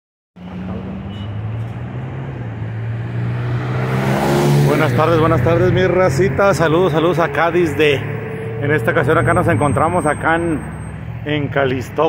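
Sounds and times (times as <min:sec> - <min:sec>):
car driving past: 0:00.4 - 0:11.3
car engine hum: 0:00.4 - 0:12.0
road noise: 0:00.4 - 0:12.0.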